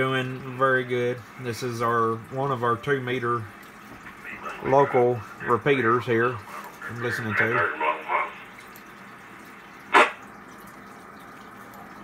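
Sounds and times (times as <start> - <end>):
steady radio receiver hiss: 3.8 - 10.3.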